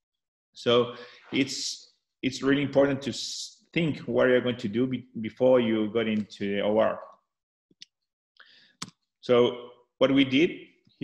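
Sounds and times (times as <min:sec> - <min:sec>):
person speaking: 0:00.7 - 0:07.0.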